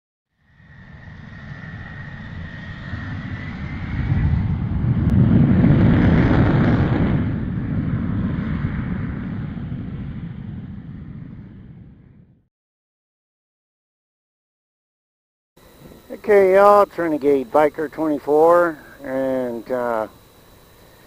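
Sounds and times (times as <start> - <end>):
jet aircraft passing: 0.4 - 12.4, 15.6 - 21.0.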